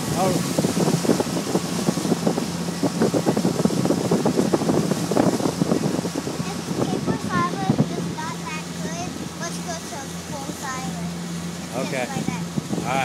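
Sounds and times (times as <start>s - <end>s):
motorboat engine hum: 0.0s - 13.0s
rush of boat wake: 0.0s - 13.0s
wind buffeting microphone: 0.0s - 13.0s.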